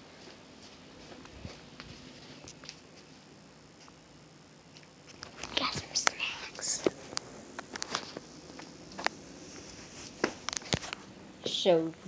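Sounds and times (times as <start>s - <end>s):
person whispering: 5.4s - 6.9s.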